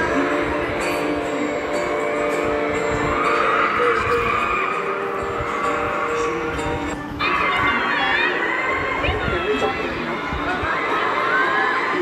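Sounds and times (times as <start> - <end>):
acoustic guitar: 0.0 - 12.0
man singing: 3.6 - 5.5.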